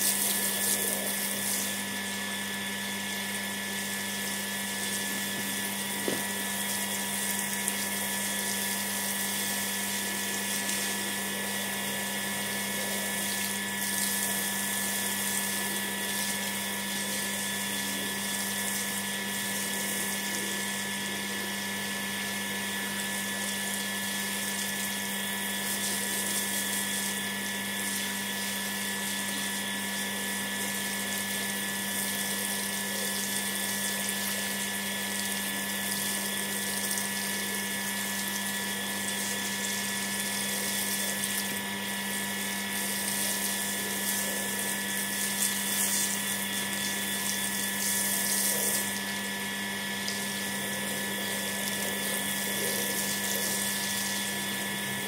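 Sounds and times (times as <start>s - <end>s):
high-pitched machine whine: 0.0s - 35.8s
garden hose water spraying: 0.0s - 55.0s.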